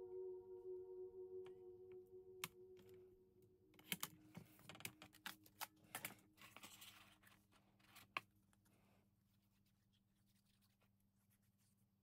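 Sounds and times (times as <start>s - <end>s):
paper clicks and rustles: 3.8s - 8.4s.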